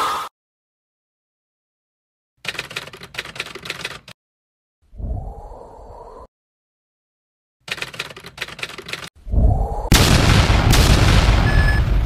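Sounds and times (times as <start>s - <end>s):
typewriter clicks: 2.4s - 4.2s, 7.7s - 9.1s
sudden loud burst: 9.9s - 12.0s.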